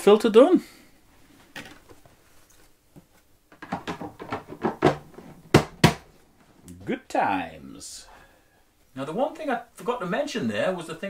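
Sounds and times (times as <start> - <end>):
hard objects clicking and knocking: 3.5 - 6.1.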